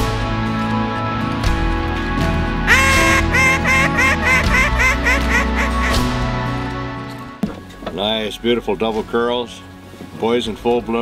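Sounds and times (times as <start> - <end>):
background music: 0.0 - 11.0
duck quacking: 2.7 - 6.2.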